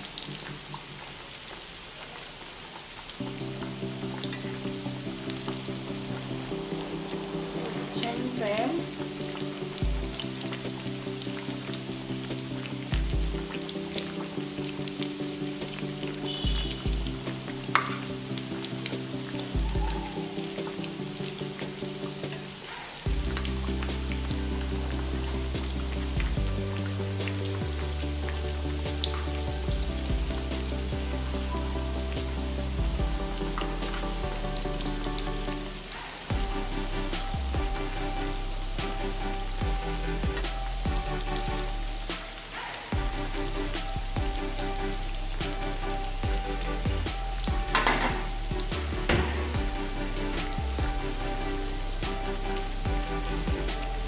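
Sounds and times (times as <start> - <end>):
hot oil sizzling: 0.0 - 54.0
background music: 3.1 - 54.0.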